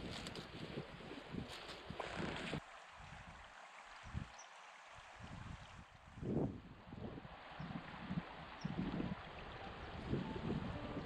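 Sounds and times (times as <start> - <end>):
river running over stones: 0.0 - 11.0
wind gusting on microphone: 5.2 - 11.0
faint held music notes: 9.6 - 11.0.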